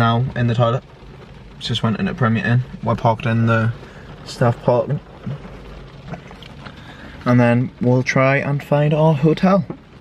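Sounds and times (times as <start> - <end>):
faint rain taps: 0.0 - 10.0
rain on a car roof: 0.0 - 10.0.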